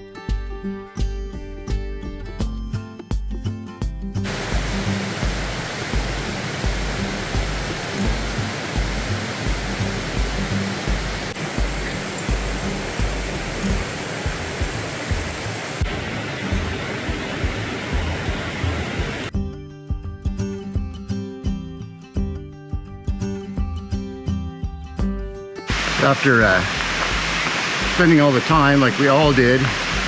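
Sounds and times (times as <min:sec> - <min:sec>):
music with low beat: 0:00.3 - 0:15.4, 0:26.6 - 0:28.2
rushing creek water: 0:04.2 - 0:19.3, 0:25.7 - 0:30.0.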